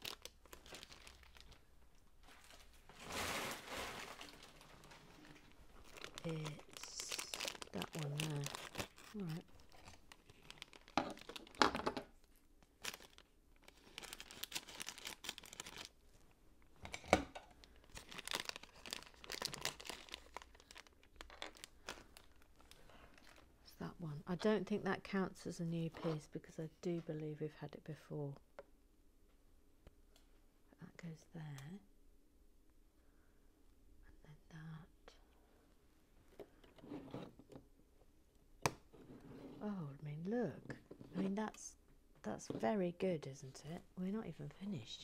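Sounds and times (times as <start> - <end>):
plastic bag crinkling: 0.0 - 16.0, 16.9 - 23.5.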